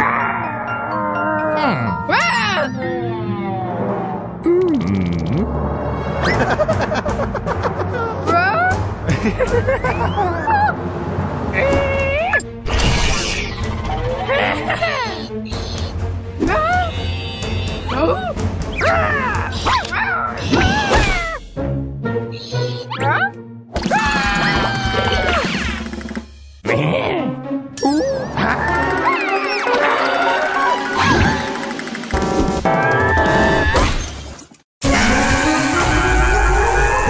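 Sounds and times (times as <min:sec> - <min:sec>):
cartoon dog yelps and whimpers: 0:00.0 - 0:02.7, 0:10.0 - 0:10.8, 0:11.6 - 0:12.4, 0:14.2 - 0:21.4, 0:22.3 - 0:25.6, 0:27.8 - 0:31.1
cartoon soundtrack music: 0:00.0 - 0:34.0, 0:34.8 - 0:37.0.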